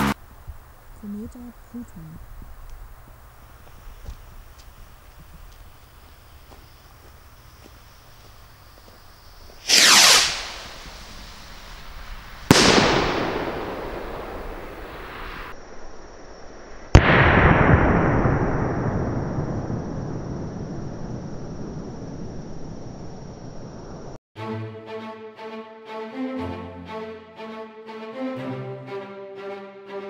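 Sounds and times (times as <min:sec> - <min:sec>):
firework rocket whoosh: 0:09.4 - 0:24.2
firework bang: 0:09.5 - 0:15.5, 0:16.9 - 0:22.2.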